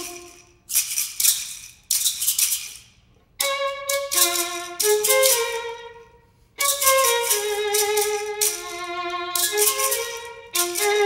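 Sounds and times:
rattles shaken: 0.0s - 5.9s, 6.6s - 11.0s.

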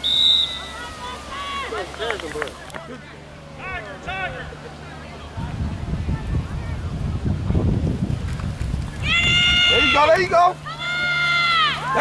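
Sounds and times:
wind rumbling on microphone: 5.3s - 10.3s
person shouting: 9.1s - 12.0s.

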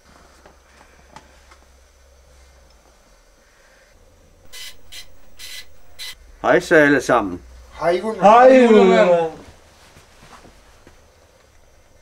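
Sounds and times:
short hissing bursts: 4.5s - 6.2s.

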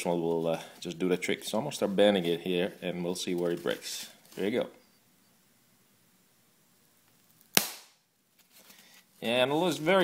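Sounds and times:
foam snapping: 7.4s - 8.0s.

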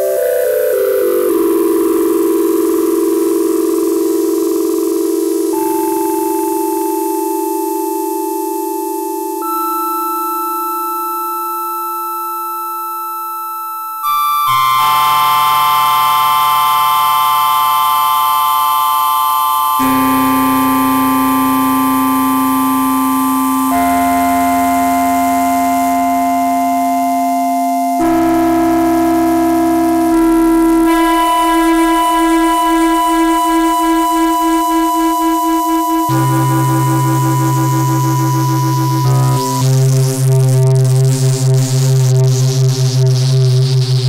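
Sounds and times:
synthesizer sustained chords: 14.1s - 44.0s.

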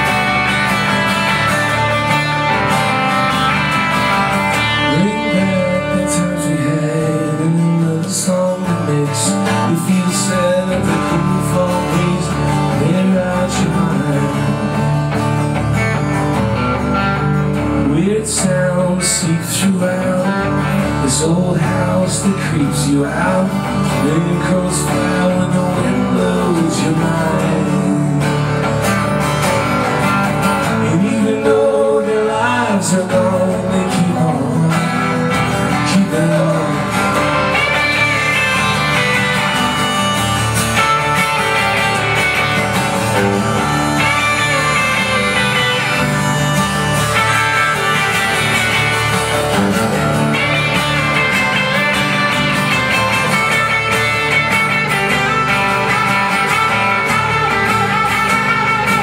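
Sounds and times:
electric guitar lead: 0.0s - 59.0s
strummed acoustic guitar: 0.0s - 59.0s.

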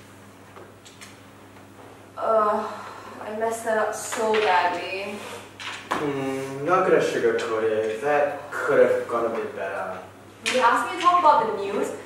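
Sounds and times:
woman speaking: 2.2s - 5.4s, 10.4s - 12.0s.

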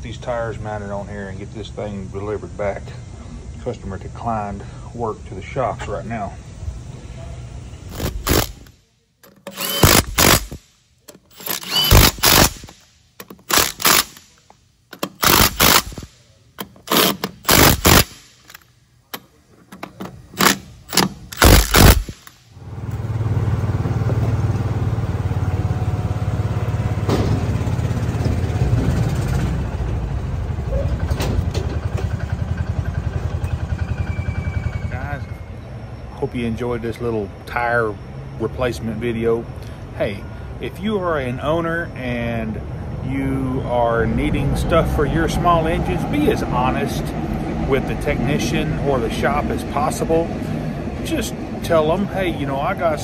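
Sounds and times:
impact wrench bursts: 7.9s - 18.6s, 20.2s - 22.5s
engine running steadily: 20.3s - 35.4s.

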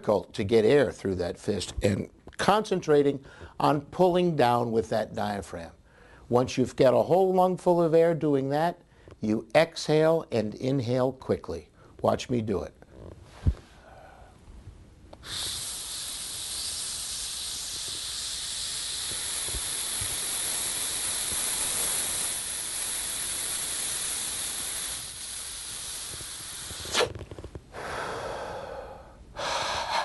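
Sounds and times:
man inhaling through fist: 13.4s - 14.4s, 15.2s - 30.0s
quick exhale: 13.4s - 14.4s, 15.2s - 27.2s, 27.8s - 30.0s.

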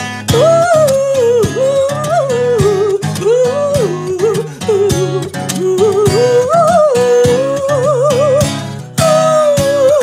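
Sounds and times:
acoustic guitar: 0.0s - 10.0s
person singing long notes: 0.3s - 10.0s.

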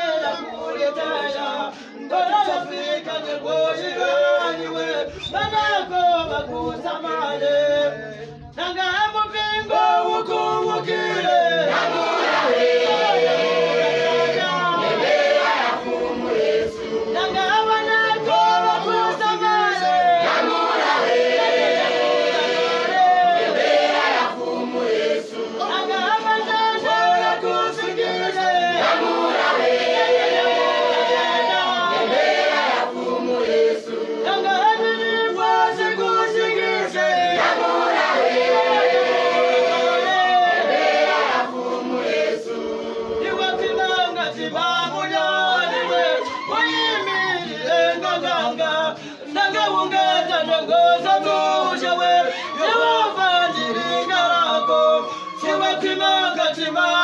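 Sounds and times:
congregation singing in chorus: 0.0s - 57.0s.

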